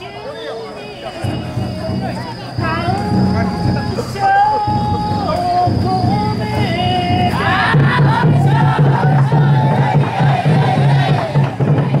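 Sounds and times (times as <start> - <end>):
men shouting a chant: 0.0 - 12.0.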